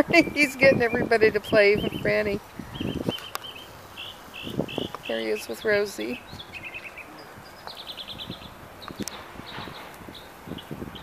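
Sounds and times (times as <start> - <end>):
bird trilling: 0.1 - 11.0.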